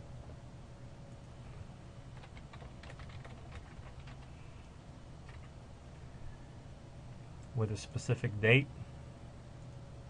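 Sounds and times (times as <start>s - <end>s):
low steady hum: 0.0s - 10.0s
keyboard typing: 2.2s - 4.3s, 5.2s - 5.6s.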